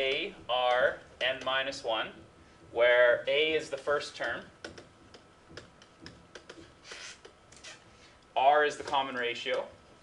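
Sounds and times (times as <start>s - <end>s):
stylus tapping and scratching on tablet: 0.0s - 8.1s, 8.7s - 9.8s.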